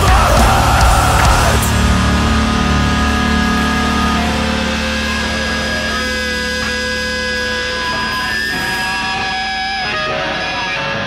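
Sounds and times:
distorted rock guitars and bass: 0.0s - 11.0s.

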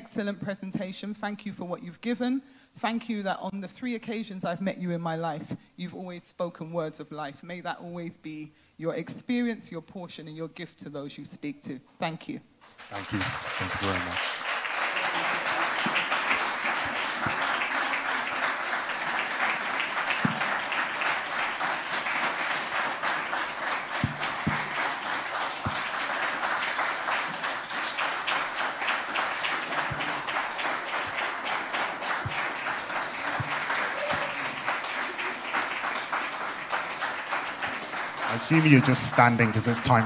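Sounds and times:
audience applauding: 12.6s - 40.0s.

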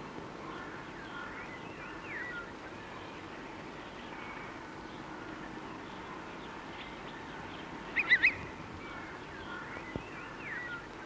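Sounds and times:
film soundtrack hiss: 0.0s - 11.0s
bird calling with squeaky notes: 8.0s - 8.4s.

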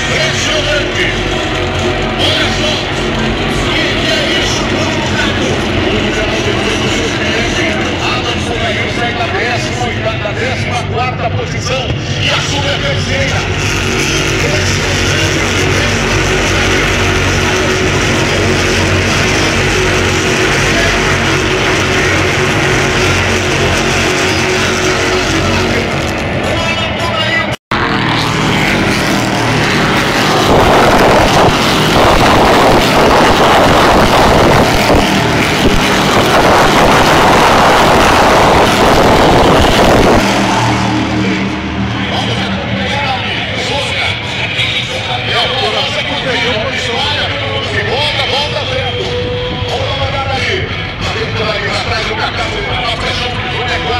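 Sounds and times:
racing car engines: 0.0s - 53.9s.

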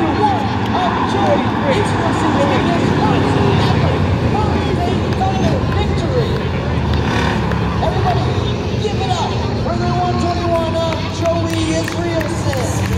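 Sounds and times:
crowd chatter: 0.0s - 12.9s
race car engines: 0.0s - 12.9s.

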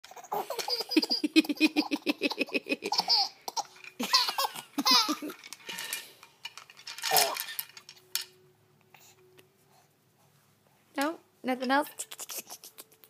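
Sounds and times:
baby laughing: 0.1s - 5.4s.

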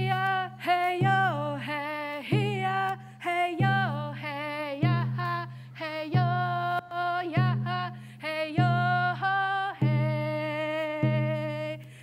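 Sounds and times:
slow drumbeat: 0.0s - 12.0s.

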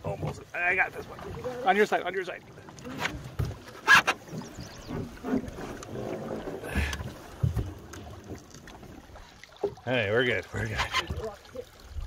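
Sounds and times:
paddle strokes splashing: 0.0s - 11.8s.

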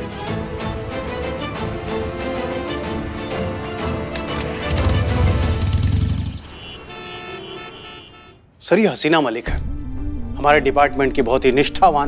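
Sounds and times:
vehicle horns honking: 4.6s - 8.6s.

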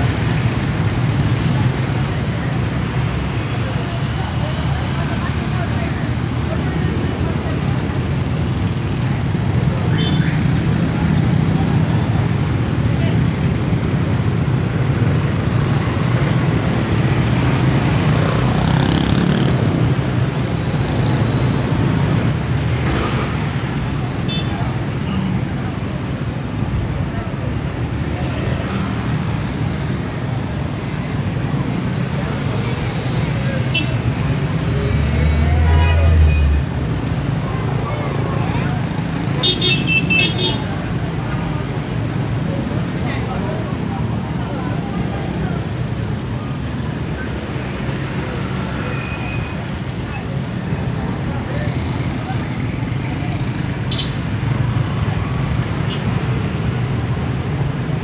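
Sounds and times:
people's voices: 0.0s - 58.0s
scooters and cars passing: 0.0s - 58.0s.

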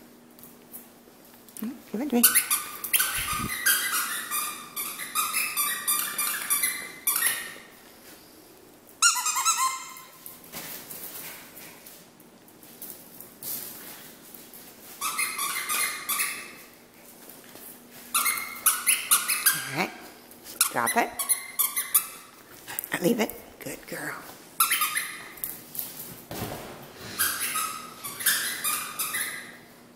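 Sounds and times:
squeaky dog toy squeaking: 2.2s - 7.6s, 9.0s - 10.2s, 15.0s - 16.6s, 18.1s - 19.9s, 20.6s - 22.3s, 24.6s - 25.3s, 27.2s - 29.6s.

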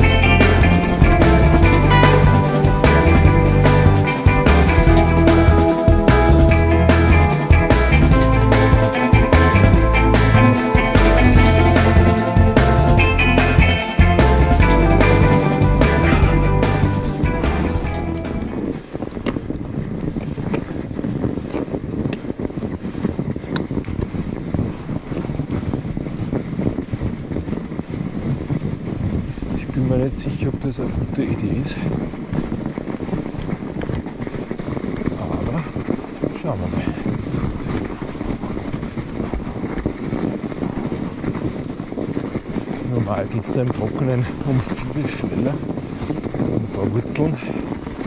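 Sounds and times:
background music: 0.0s - 18.7s
bike tyres rolling through snow: 0.0s - 48.0s
wind buffeting microphone: 0.0s - 48.0s.

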